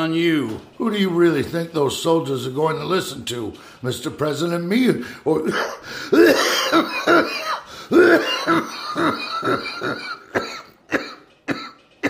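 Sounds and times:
man coughing: 0:05.4 - 0:11.8.

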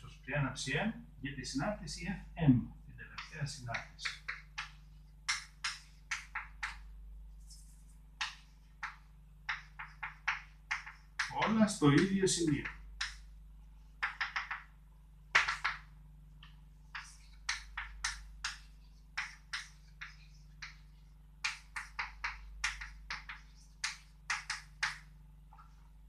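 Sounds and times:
chalk scratching on blackboard: 0:16.9 - 0:21.2, 0:23.1 - 0:24.5.

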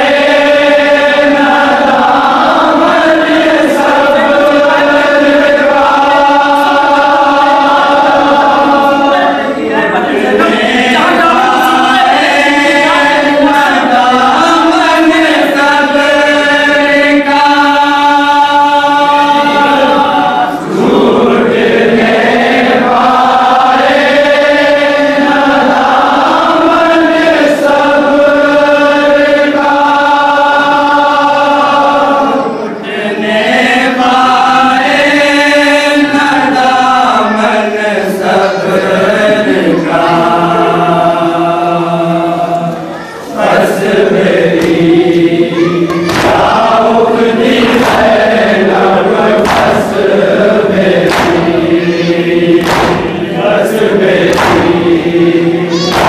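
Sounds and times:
men chanting a lament: 0:00.0 - 0:56.0.

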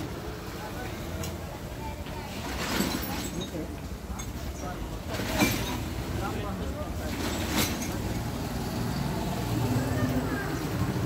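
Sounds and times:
faint voices: 0:00.0 - 0:11.0
road traffic rumble: 0:00.0 - 0:11.0.

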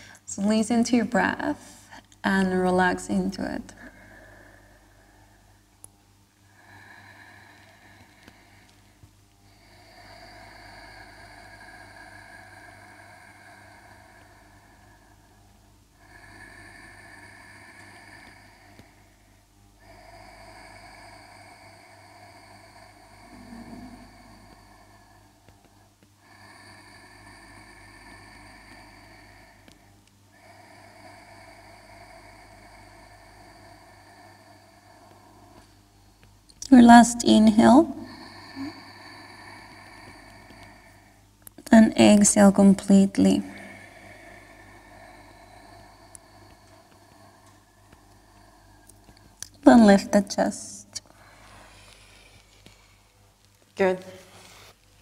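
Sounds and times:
woman breathing slowly: 0:00.0 - 0:55.0.

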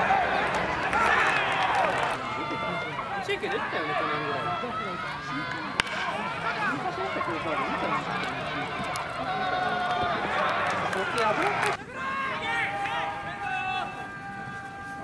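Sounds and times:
players shouting: 0:00.0 - 0:15.0
baseball bat cracking ball: 0:05.5 - 0:11.8.

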